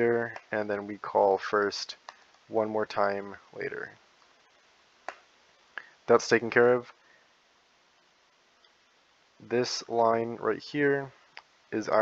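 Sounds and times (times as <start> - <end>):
faint room tone: 0.0 - 12.0.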